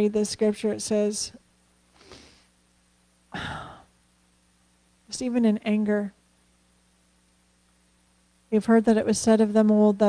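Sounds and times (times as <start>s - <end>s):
woman sighing: 3.3s - 3.9s.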